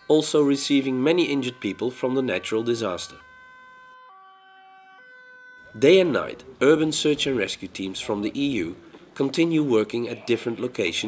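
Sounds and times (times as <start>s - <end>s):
faint two-tone ambulance siren: 0.0s - 8.1s.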